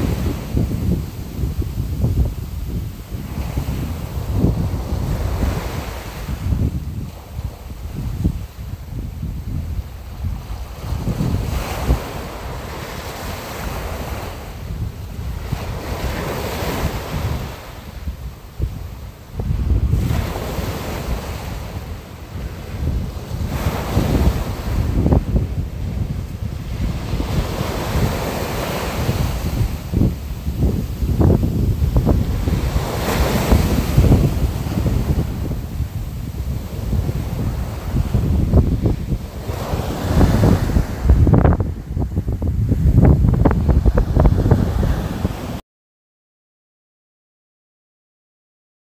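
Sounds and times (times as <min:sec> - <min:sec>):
sea waves washing: 0:00.0 - 0:45.6
wind blowing on microphone: 0:00.0 - 0:45.6.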